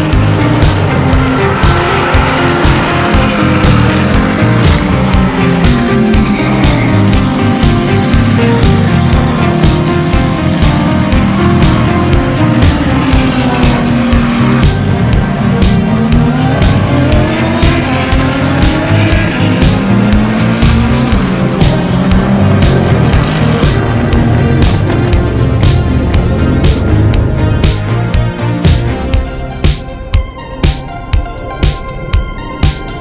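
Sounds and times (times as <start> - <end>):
race car engines revving: 0.0 - 30.0
music with steady beat: 0.0 - 33.0.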